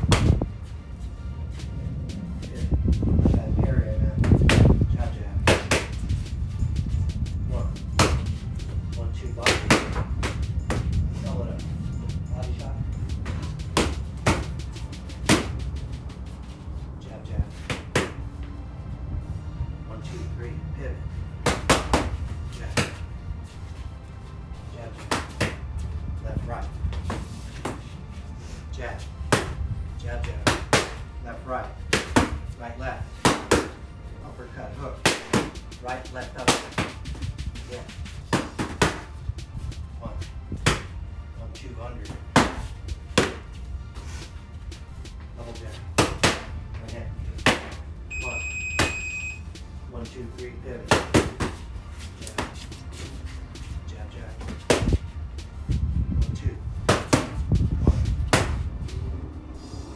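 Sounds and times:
gloves slapping punch paddles: 0.0 - 0.4, 4.2 - 4.8, 5.4 - 6.2, 8.0 - 8.3, 9.4 - 11.0, 13.2 - 16.0, 17.6 - 18.2, 21.4 - 23.1, 25.0 - 25.7, 26.9 - 27.9, 29.2 - 29.6, 30.2 - 31.1, 31.8 - 32.5, 33.2 - 33.8, 35.0 - 37.6, 38.3 - 39.2, 40.5 - 41.0, 42.1 - 43.6, 45.9 - 46.6, 47.4 - 47.9, 50.8 - 52.8, 54.4 - 55.0, 56.8 - 58.8
electronic beep: 48.1 - 49.5.

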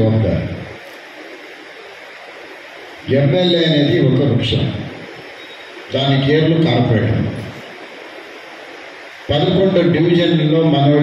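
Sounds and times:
man's voice: 0.0 - 0.7, 3.1 - 5.0, 5.9 - 7.6, 9.3 - 11.0
background hiss: 0.0 - 11.0.

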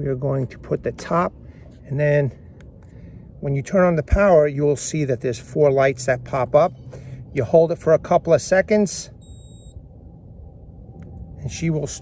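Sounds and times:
high-pitched electronic beep: 9.2 - 9.8.

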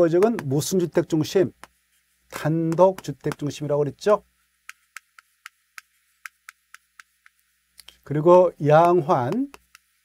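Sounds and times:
chalk tapping on chalkboard: 0.0 - 0.7, 1.5 - 3.6, 4.6 - 7.5, 8.7 - 10.0.

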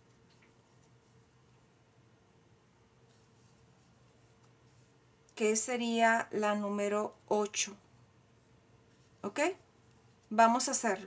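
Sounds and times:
crochet hook rustling yarn: 0.0 - 2.0, 3.0 - 11.0
low room hum: 0.0 - 11.0.

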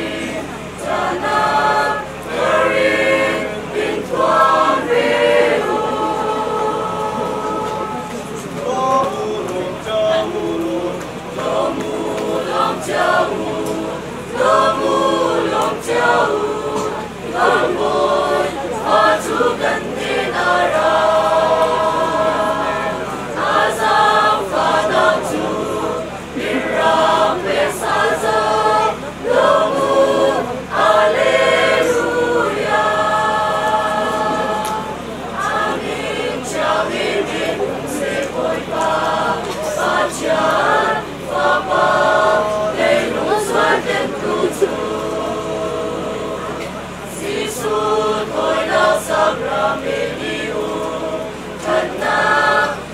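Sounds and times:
mixed choir singing: 0.0 - 52.9.

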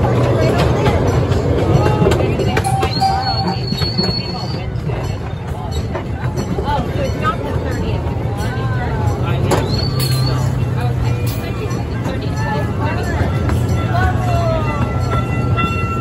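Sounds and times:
miniature train rumbling: 0.0 - 16.0
people chattering: 0.0 - 16.0
high wheel squeal: 2.5 - 5.9, 9.4 - 10.8.

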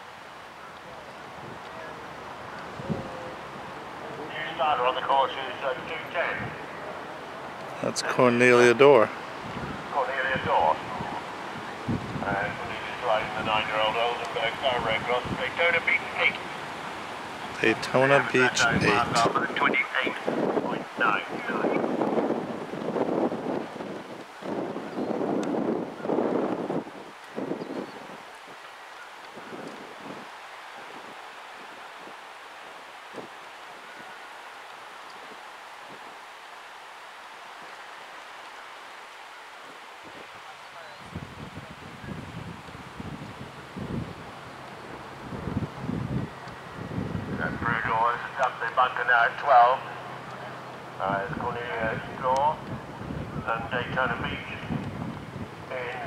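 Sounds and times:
steady wind hiss: 0.0 - 56.0
wind buffeting microphone: 1.0 - 4.8, 6.1 - 34.2, 39.6 - 48.2, 50.7 - 56.0.

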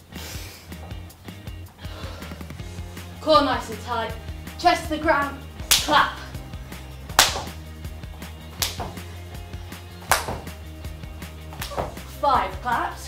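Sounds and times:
background music: 0.0 - 13.0
sharp hand claps: 5.7 - 6.0, 7.1 - 7.6, 8.6 - 9.0, 10.0 - 10.5, 11.5 - 11.9.

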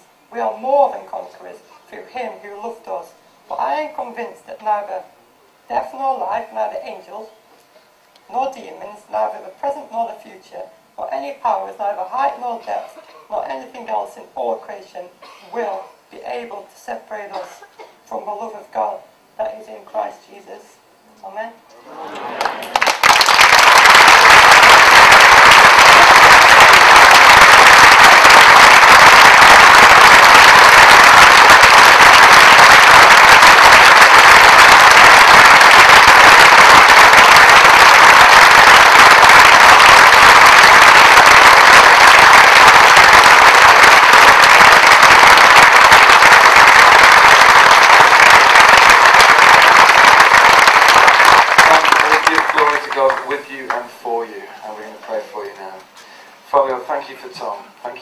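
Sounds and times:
audience applauding: 22.0 - 53.8.

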